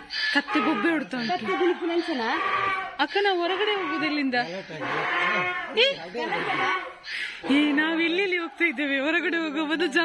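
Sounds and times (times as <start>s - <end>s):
donkey braying: 0.0s - 8.2s.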